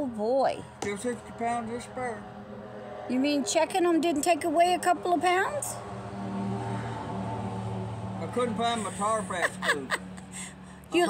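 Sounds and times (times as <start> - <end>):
engine droning: 0.0 - 11.0.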